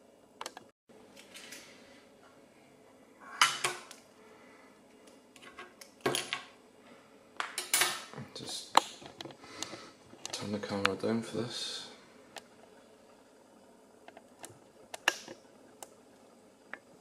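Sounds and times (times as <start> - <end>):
tools set down on bench: 5.4 - 6.5, 7.4 - 8.1.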